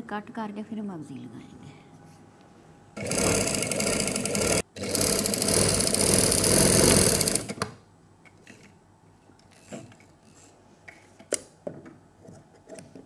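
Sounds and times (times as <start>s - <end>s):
sewing machine running: 3.0s - 7.6s.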